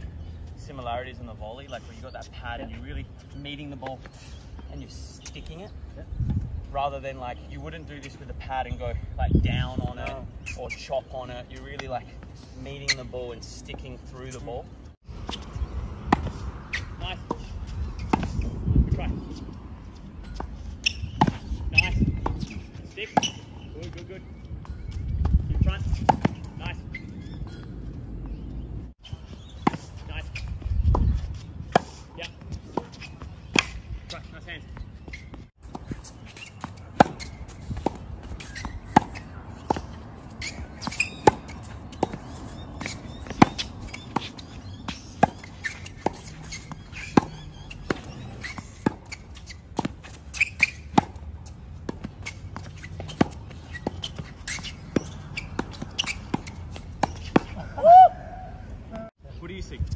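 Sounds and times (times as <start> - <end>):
tennis balls struck with rackets: 11.1 - 12.2, 12.8 - 58.2.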